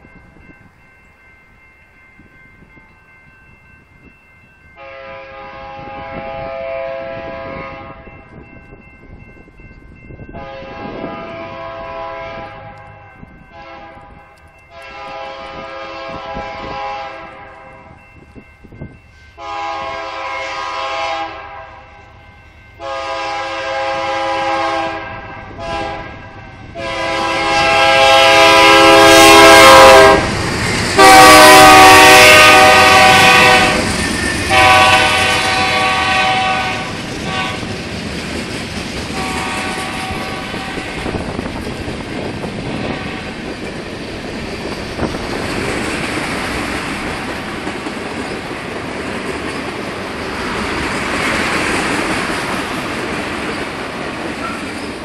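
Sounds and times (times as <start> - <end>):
train rumbling past: 0.0 - 55.0
locomotive air horn blasts: 4.8 - 8.0, 10.4 - 17.9, 19.4 - 22.0, 22.8 - 30.3, 31.0 - 33.9, 34.5 - 37.7, 39.2 - 41.2.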